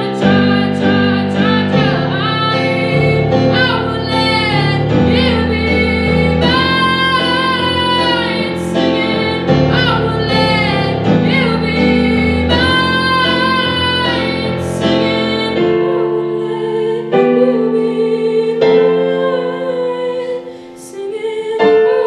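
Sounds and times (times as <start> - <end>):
keyboard chords: 0.0 - 22.0
woman singing with vibrato: 0.0 - 22.0.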